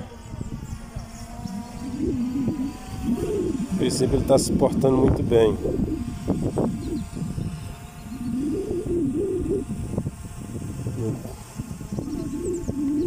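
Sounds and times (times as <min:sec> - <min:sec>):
steady low rumble: 0:00.0 - 0:13.0
man murmuring: 0:03.2 - 0:06.0, 0:10.8 - 0:11.4.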